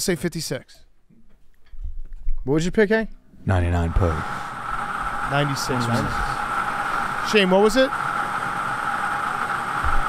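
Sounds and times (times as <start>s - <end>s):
blower whirring hiss: 3.5s - 10.0s.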